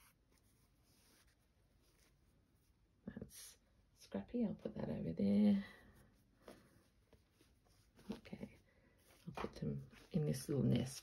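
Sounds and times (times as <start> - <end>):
cloth rustling: 0.0 - 3.0, 5.8 - 11.0.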